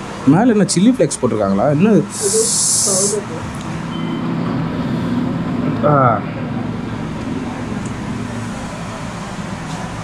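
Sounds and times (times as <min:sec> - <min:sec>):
steady low hum: 0:00.0 - 0:10.0
indistinct voices: 0:01.8 - 0:03.8.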